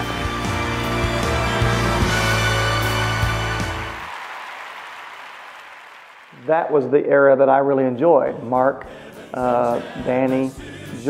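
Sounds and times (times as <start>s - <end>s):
applause: 0.5s - 6.7s.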